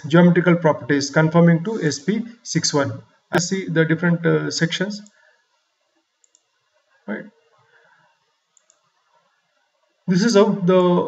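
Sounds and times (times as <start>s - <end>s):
faint computer mouse clicks: 6.2s - 6.5s, 8.6s - 9.0s.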